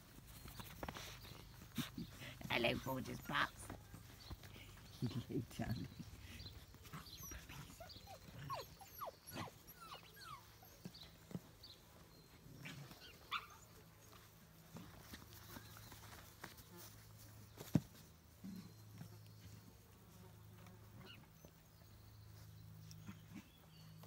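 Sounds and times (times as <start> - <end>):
puppies yipping and squeaking: 0.1 - 14.3, 21.0 - 21.7.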